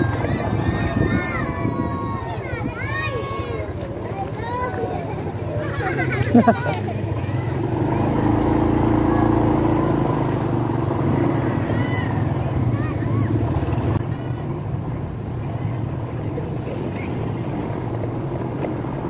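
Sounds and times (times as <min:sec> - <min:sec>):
road and wind noise: 0:00.0 - 0:19.0
small motorcycle engine: 0:04.6 - 0:14.0.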